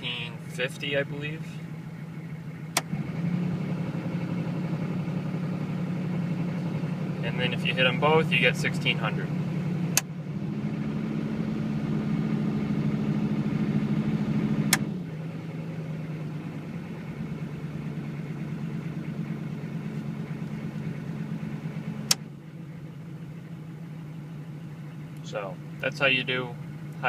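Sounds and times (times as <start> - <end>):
diesel engine idling: 0.0 - 27.0.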